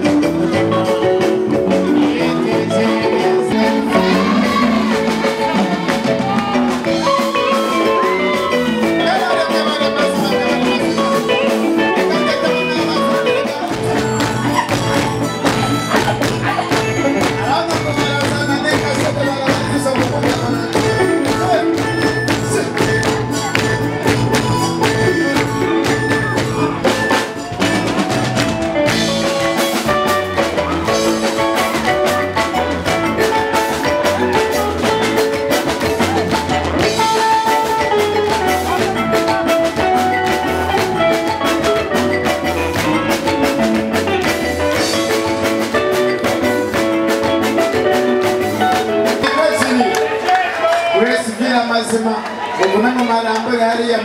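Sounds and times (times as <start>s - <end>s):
man singing lead: 0.0s - 43.9s, 48.6s - 51.9s
acoustic guitar: 0.0s - 50.4s
percussion beat: 0.0s - 54.0s
children's choir singing: 1.8s - 8.7s
handclaps: 27.6s - 29.9s, 37.6s - 51.0s.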